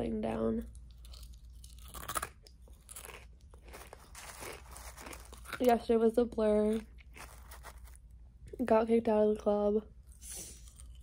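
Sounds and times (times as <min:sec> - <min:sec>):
cereal crunching as chewed: 0:00.6 - 0:08.6, 0:10.1 - 0:11.0.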